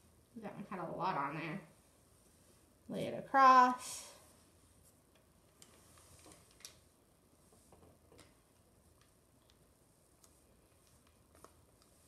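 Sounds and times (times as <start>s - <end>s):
faint clicks and light taps: 5.1s - 6.8s, 7.5s - 12.0s.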